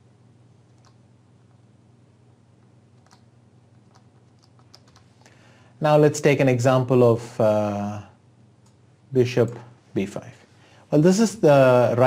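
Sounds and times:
steady low hum: 0.0s - 12.0s
computer keyboard clicks: 0.7s - 1.0s, 3.0s - 5.2s.

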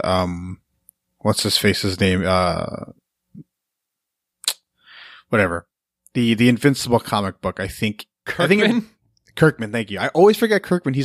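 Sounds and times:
soft breath: 4.8s - 5.3s
person talking: 5.3s - 11.0s.

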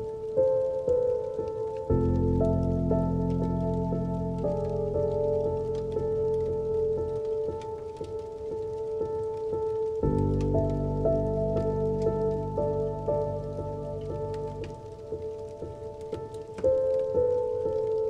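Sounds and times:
slow solo piano: 0.0s - 18.0s
steady rain: 0.0s - 18.0s.

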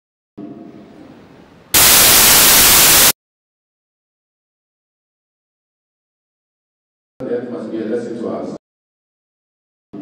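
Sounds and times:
harsh static burst: 1.8s - 3.2s.

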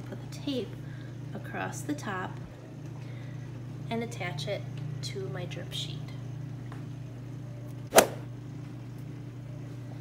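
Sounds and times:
steady low hum: 0.0s - 10.0s
sharp tape snap: 7.9s - 8.2s.

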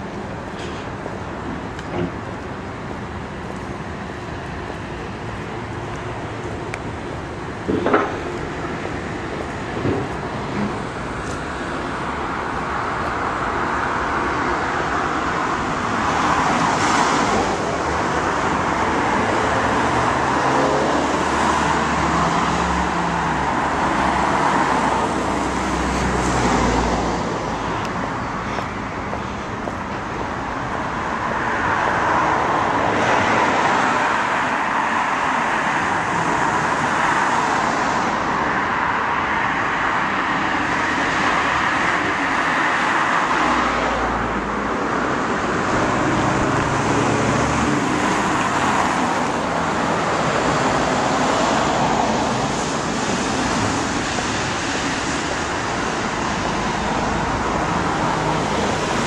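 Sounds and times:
road traffic passing: 0.0s - 59.0s.

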